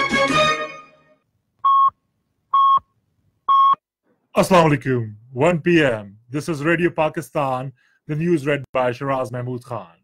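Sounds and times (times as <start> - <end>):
radio time signal beeps: 3.5 - 3.8.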